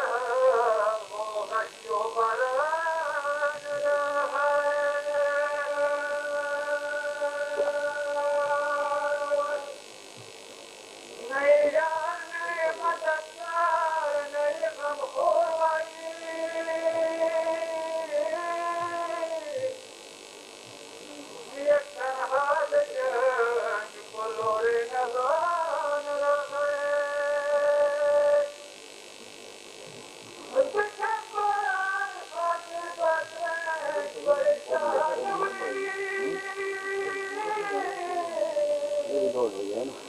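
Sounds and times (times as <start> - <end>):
low electrical hum: 0.0 - 40.0
tape hiss: 0.0 - 40.0
man singing long note: 30.6 - 39.9
person chanting a lament: 32.6 - 39.4.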